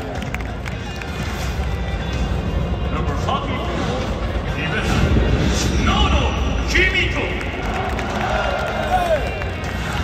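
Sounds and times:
stadium crowd cheering: 6.7s - 10.0s.

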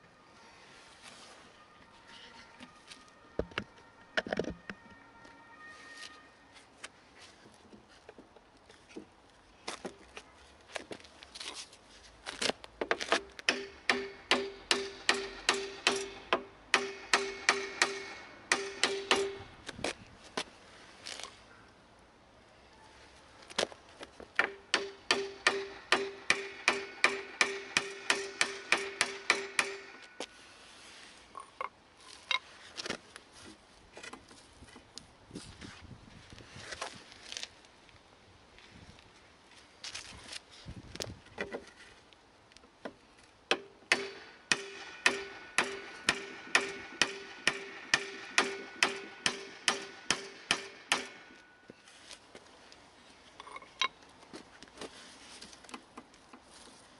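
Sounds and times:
hammer striking metal exhaust: 13.5s - 19.4s, 24.4s - 30.1s, 43.5s - 51.5s.

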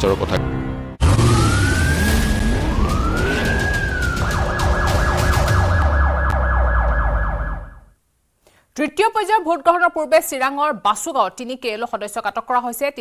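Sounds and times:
emergency siren wailing and yelping: 1.0s - 8.0s.

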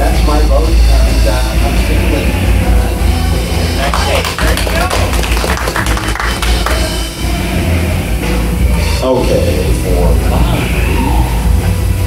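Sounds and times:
live rock band with drums: 0.0s - 12.0s
hand clapping: 3.8s - 7.1s.

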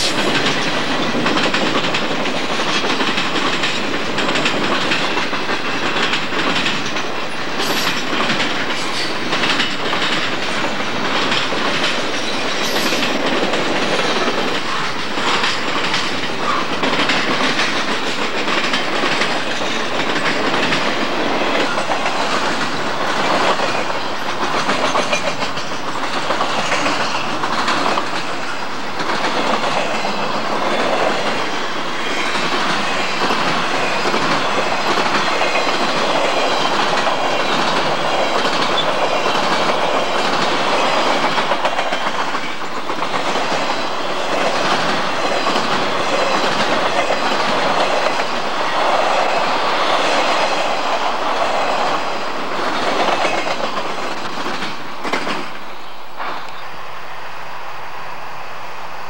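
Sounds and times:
train wheels running on rails: 0.0s - 59.0s.

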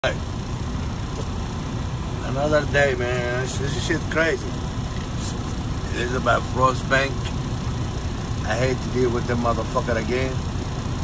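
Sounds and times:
truck engine rumble inside cab: 0.0s - 11.0s.

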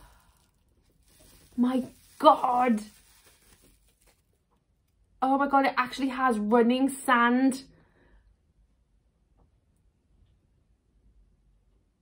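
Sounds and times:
bubble wrap crinkling: 0.0s - 5.0s.

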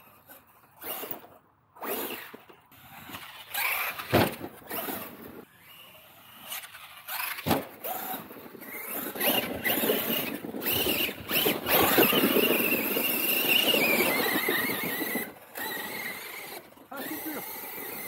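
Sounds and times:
tyres churning snow: 1.8s - 18.0s
high electric motor whine: 9.2s - 18.0s.

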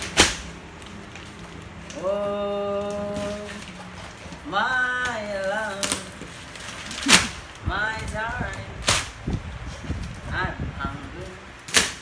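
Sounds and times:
wrapping paper tearing: 0.0s - 7.6s.

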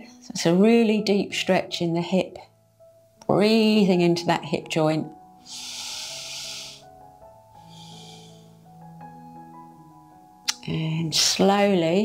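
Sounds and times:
soft background music: 0.0s - 12.0s
woman breathing: 5.4s - 8.8s.

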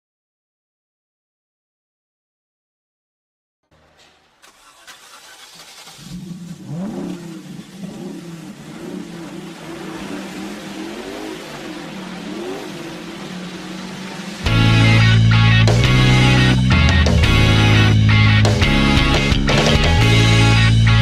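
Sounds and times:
low engine-like drone: 5.9s - 21.0s
wavering pitch glides: 6.3s - 21.0s.

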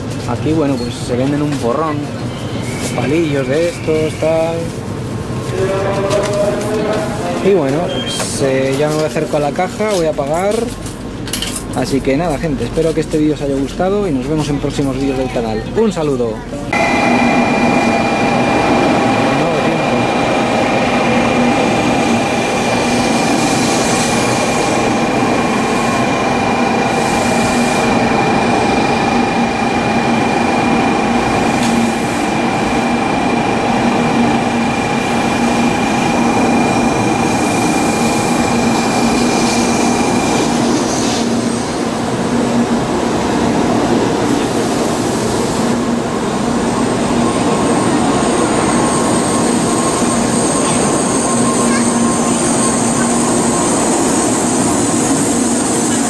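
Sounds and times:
train whine: 0.0s - 15.0s, 16.4s - 56.0s
train running noise: 0.0s - 56.0s.

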